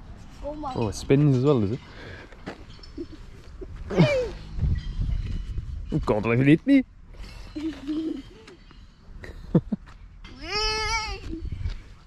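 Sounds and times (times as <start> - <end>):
child's high-pitched squeal: 10.4 - 11.5.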